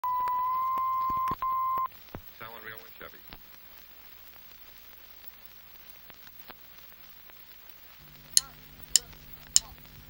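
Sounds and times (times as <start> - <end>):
electronic test-tone beep: 0.0 - 1.9
crackling clicks and pops: 0.0 - 10.0.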